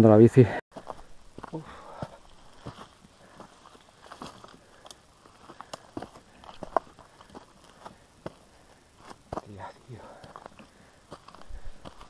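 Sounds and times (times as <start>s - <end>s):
footsteps on loose stones: 0.7s - 12.0s
bicycle tyres crunching on stones: 0.8s - 12.0s.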